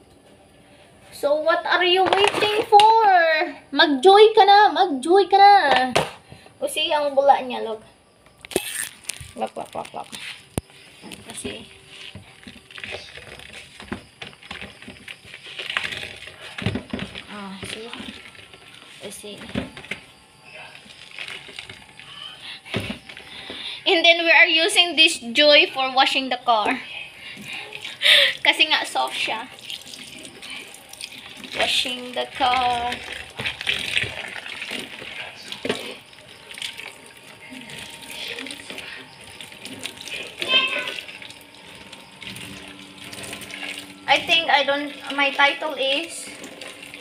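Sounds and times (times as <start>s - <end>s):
soapy sponge scrubbing: 29.2s - 47.0s
tap water splashing in sink: 29.5s - 36.0s.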